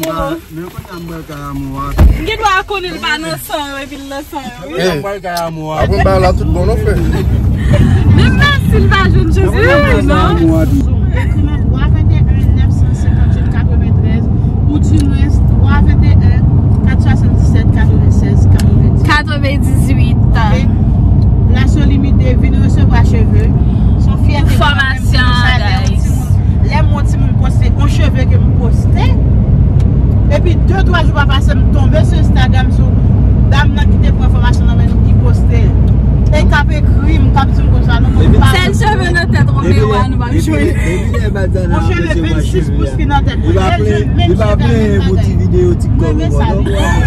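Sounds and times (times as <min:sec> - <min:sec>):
people talking: 0:00.0 - 0:20.8, 0:21.5 - 0:29.2, 0:30.3 - 0:32.9, 0:33.5 - 0:47.0
car driving rumble from inside: 0:00.0 - 0:47.0.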